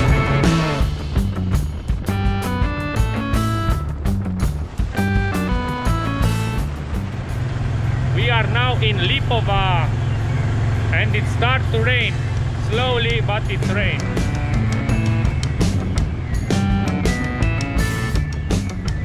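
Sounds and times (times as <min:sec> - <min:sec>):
guitar rock music: 0:00.0 - 0:10.0, 0:10.8 - 0:19.0
motorcycle engine drone: 0:00.0 - 0:19.0
person speaking: 0:10.9 - 0:14.1.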